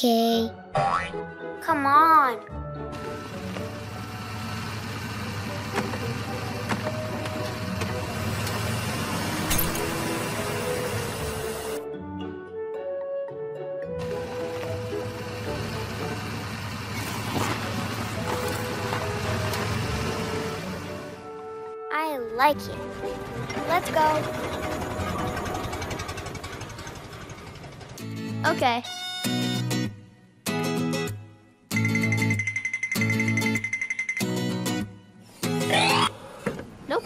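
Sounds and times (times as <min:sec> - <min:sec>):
soft background music: 0:00.0 - 0:25.9
cartoon vehicle motor rumble: 0:02.9 - 0:11.8, 0:14.0 - 0:21.3, 0:22.8 - 0:28.6.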